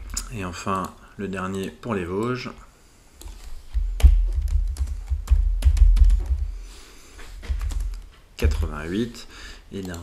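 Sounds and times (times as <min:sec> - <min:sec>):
typing on computer keyboard: 0:04.0 - 0:06.4, 0:07.5 - 0:08.1.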